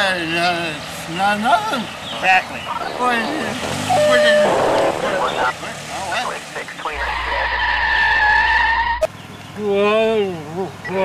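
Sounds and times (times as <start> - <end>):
car tyres screeching: 0.6 - 9.4.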